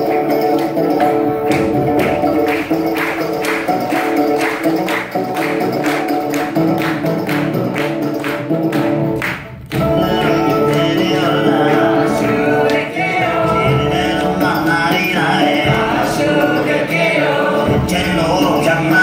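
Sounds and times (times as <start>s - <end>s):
banjo: 0.0s - 19.0s
steady drum beat: 0.0s - 19.0s.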